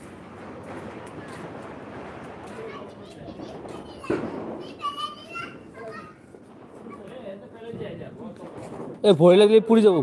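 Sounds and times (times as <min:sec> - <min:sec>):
children chattering and calling: 0:00.0 - 0:07.6.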